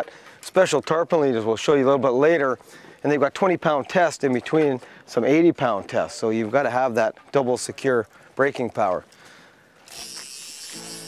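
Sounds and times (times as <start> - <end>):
high-pitched buzzing hiss: 9.9 - 11.0.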